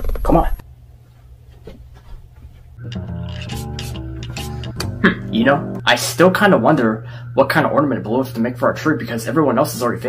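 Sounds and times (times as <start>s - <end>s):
low steady hum: 0.6s - 10.0s
background music sustained notes: 2.8s - 10.0s.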